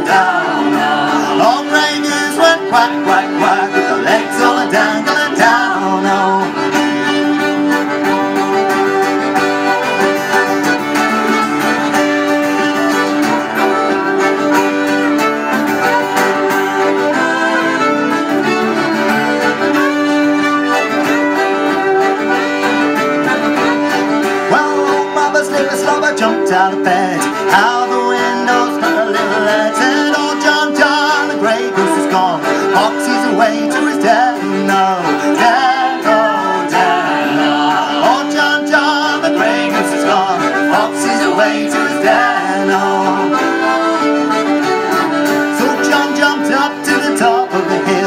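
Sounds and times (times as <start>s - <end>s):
acoustic guitar: 0.0s - 48.0s
concertina: 0.0s - 48.0s
fiddles: 0.0s - 48.0s.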